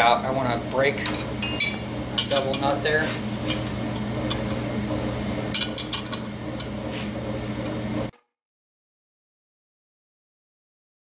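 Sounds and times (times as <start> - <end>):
sharp metal clinks: 1.0 - 2.4
wrenches clinking on nuts: 1.0 - 2.7.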